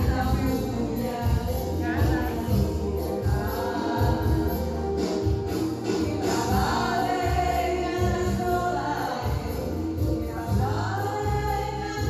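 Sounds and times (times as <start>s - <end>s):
backing music with steady beat: 0.0s - 12.0s
two women singing: 0.0s - 12.0s.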